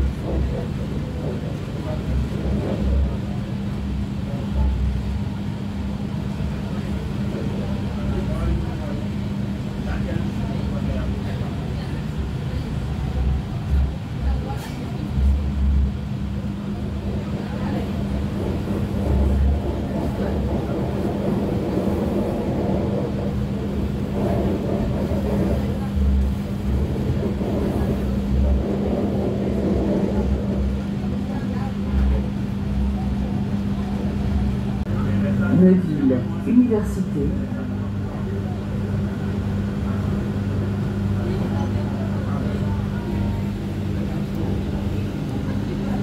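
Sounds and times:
murmur of passenger voices: 0.0s - 46.0s
train running rumble and hum: 0.0s - 46.0s.

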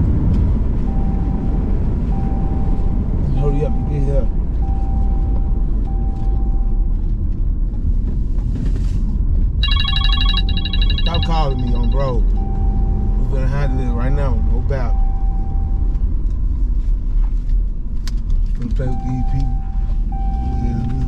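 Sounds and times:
car cabin road noise: 0.0s - 21.0s
phone ringing: 9.6s - 12.1s.

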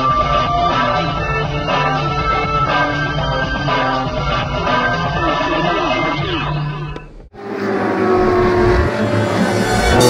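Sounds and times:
vehicle engine: 6.4s - 10.0s.

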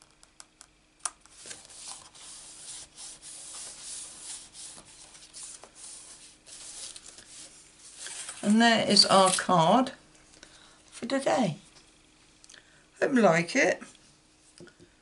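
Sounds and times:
hands rubbing a card: 1.3s - 8.4s.

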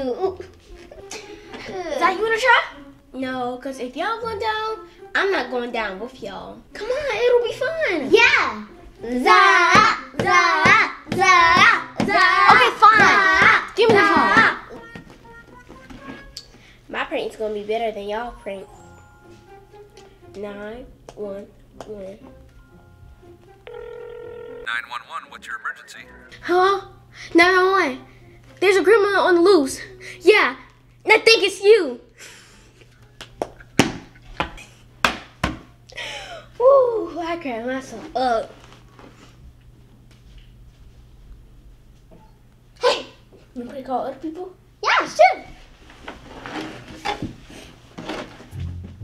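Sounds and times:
telephone ringing tone: 23.7s - 26.2s.

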